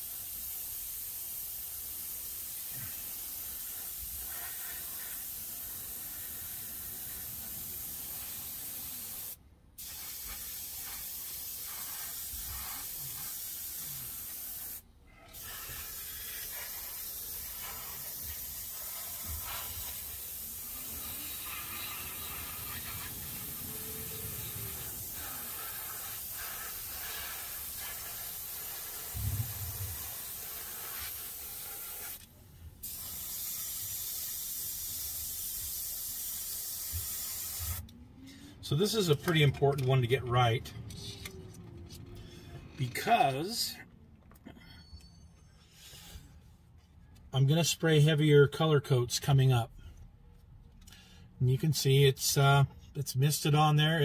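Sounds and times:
airbrush hissing: 0.0 - 37.8.

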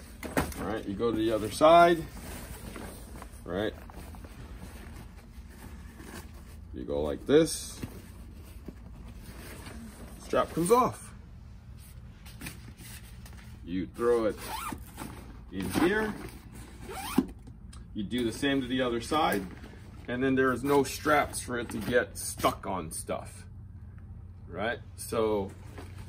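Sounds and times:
low room hum: 0.0 - 26.0
bag zipper: 16.8 - 17.3.

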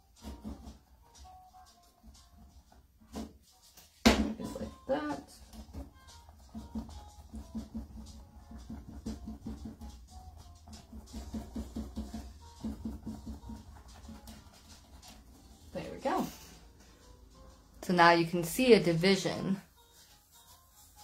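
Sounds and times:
sponge tapping on canvas: 5.4 - 14.7.

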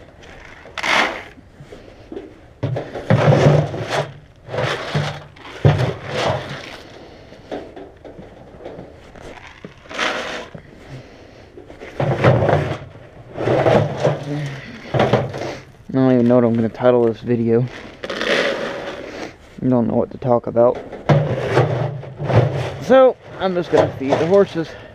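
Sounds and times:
rustling and scraping: 0.0 - 24.9.

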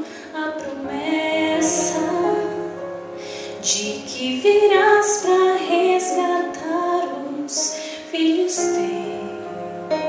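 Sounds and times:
woman singing into microphone: 0.0 - 2.8, 3.6 - 10.0.

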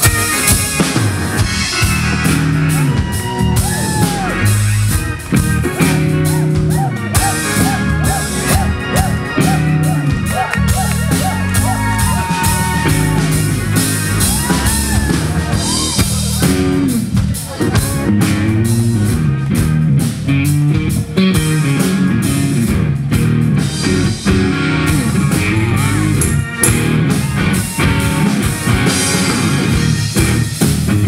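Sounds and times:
bass guitar: 0.0 - 31.0
drum kit: 0.0 - 31.0
electric guitar with gliding notes: 0.0 - 31.0.

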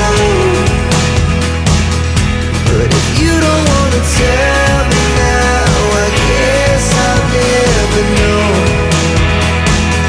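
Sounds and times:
pop-rock song: 0.0 - 10.0.

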